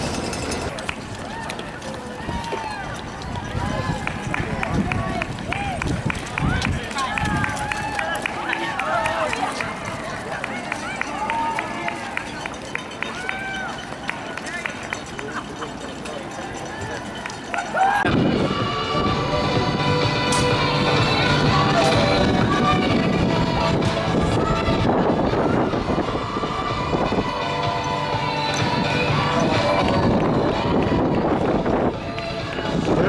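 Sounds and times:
runners' footsteps on road: 0:00.0 - 0:18.1, 0:25.3 - 0:33.0
spectators calling out: 0:00.0 - 0:18.4.

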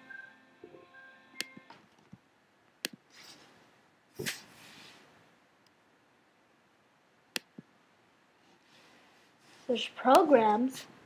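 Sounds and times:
sharp clicks: 0:07.3 - 0:07.7.

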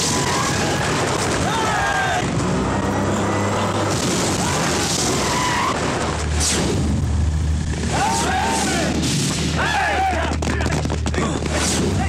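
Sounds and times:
car engine droning: 0:00.0 - 0:12.0
road noise: 0:00.0 - 0:12.0.

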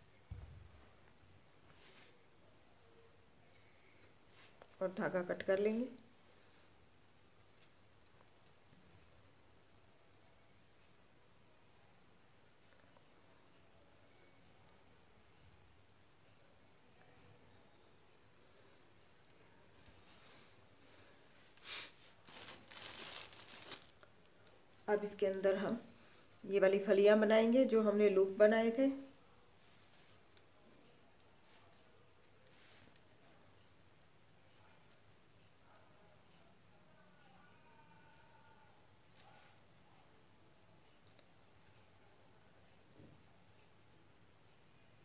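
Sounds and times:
yarn rustling on cloth: 0:19.8 - 0:29.0.

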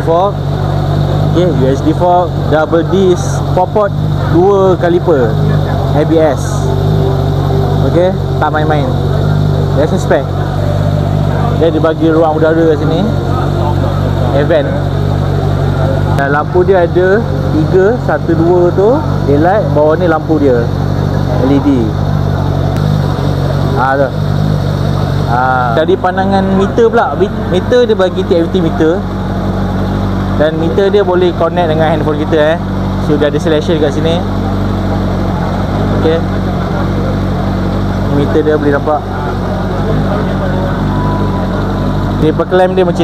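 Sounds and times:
engine idling: 0:00.0 - 0:43.0.

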